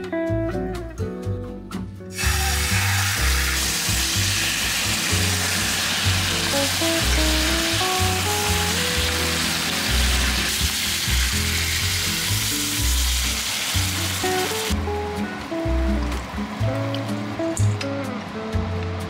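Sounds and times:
chicken sizzling in a frying pan: 0:02.1 - 0:14.8
music with pulsing bass: 0:06.0 - 0:19.0.

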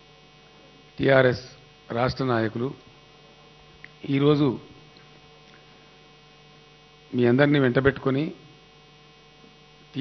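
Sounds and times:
electrical mains hum: 0:00.0 - 0:10.0
man's amplified speech: 0:01.0 - 0:02.8, 0:04.0 - 0:04.8, 0:07.1 - 0:08.4.

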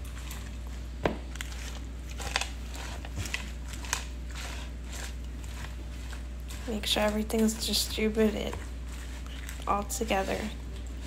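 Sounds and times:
salad leaves rustling and crunching: 0:00.0 - 0:11.0
steady low hum: 0:00.0 - 0:11.0.

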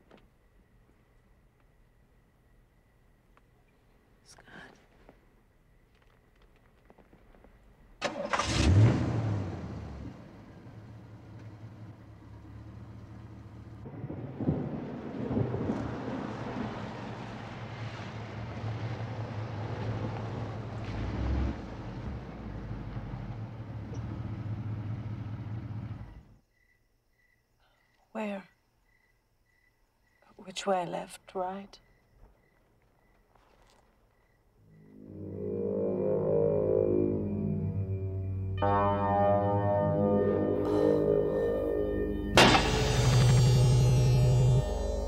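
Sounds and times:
car engine starting and running: 0:08.0 - 0:14.0, 0:16.7 - 0:26.3, 0:40.3 - 0:45.0.

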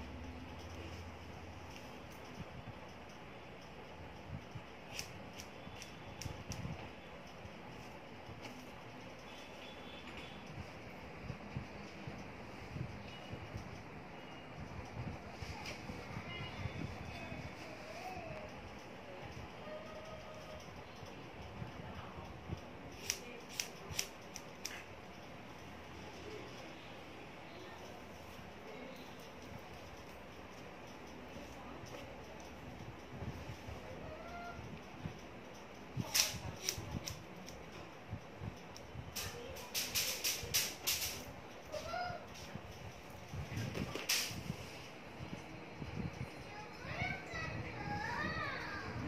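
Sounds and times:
scissors snipping hair: 0:00.2 - 0:10.5, 0:17.2 - 0:26.8, 0:27.7 - 0:44.6
child talking sing-song: 0:46.4 - 0:49.0.

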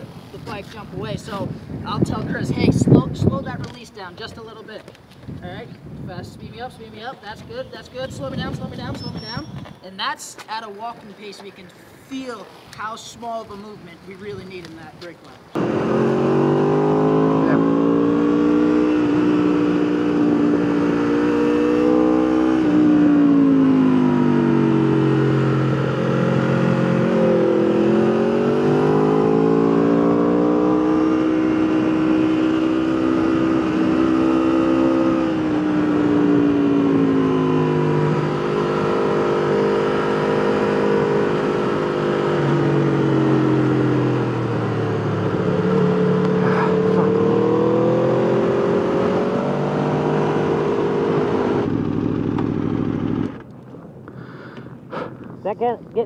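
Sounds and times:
wind noise: 0:00.0 - 0:09.8
motorcycle engine revving: 0:15.6 - 0:53.5.

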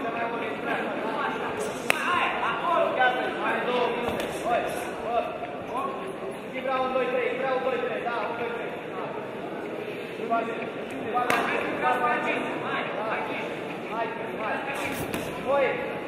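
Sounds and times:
voices shouting in echoing hall: 0:00.0 - 0:16.0.

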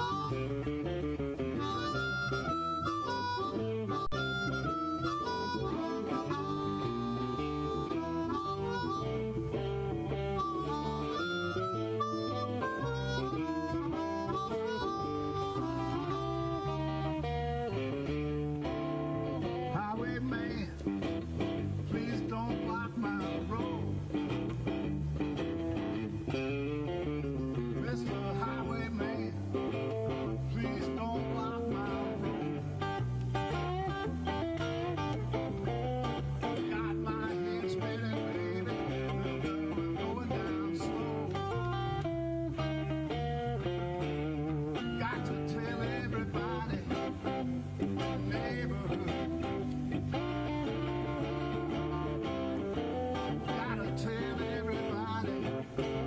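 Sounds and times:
electric guitar: 0:00.0 - 0:56.0
man singing into a microphone: 0:19.5 - 0:20.9, 0:21.8 - 0:24.1, 0:26.8 - 0:32.6, 0:35.7 - 0:42.0, 0:44.7 - 0:50.5, 0:52.5 - 0:56.0.

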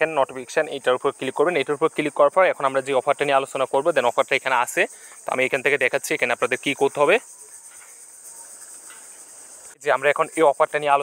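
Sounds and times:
high-pitched hiss: 0:00.0 - 0:11.0.

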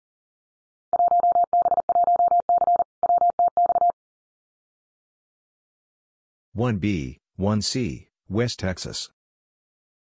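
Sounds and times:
morse code tone beeping: 0:01.0 - 0:04.0.

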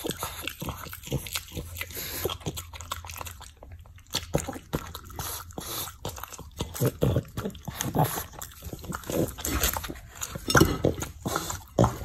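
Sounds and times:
dog chewing and licking: 0:00.0 - 0:12.0.

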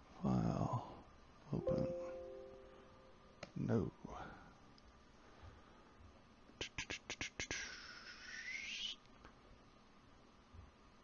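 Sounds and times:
shh hiss from mouth: 0:06.6 - 0:09.0.

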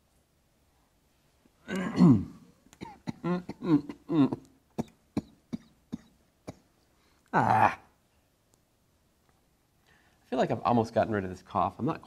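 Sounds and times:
man coughing: 0:01.7 - 0:06.7.

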